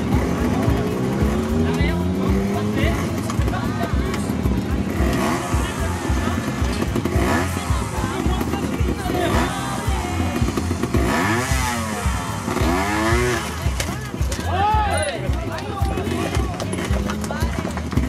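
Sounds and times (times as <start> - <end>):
background music with steady beat: 0.0 - 18.0
motorcycle engine revving: 0.0 - 18.0.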